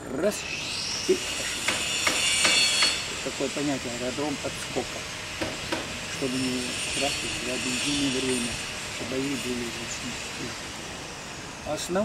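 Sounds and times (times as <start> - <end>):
steady high hiss: 0.0 - 12.0
sharp knocks: 1.6 - 3.0, 5.4 - 6.0.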